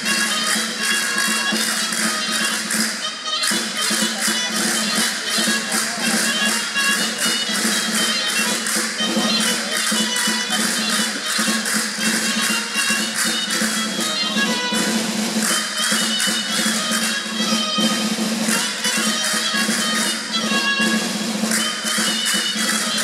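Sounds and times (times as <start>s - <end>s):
folk band playing: 0.0s - 23.0s
quick percussion beat: 0.0s - 23.0s.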